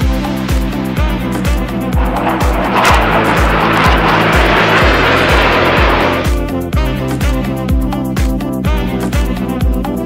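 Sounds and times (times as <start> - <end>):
jet aircraft passing overhead: 1.8 - 6.5.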